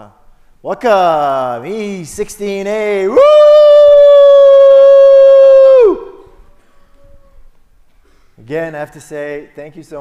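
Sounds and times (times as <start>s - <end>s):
man cheering woo: 2.9s - 6.3s.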